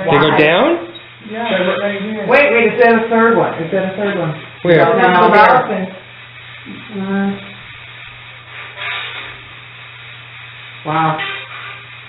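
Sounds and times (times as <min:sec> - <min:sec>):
recording hum and hiss: 0:00.0 - 0:12.0.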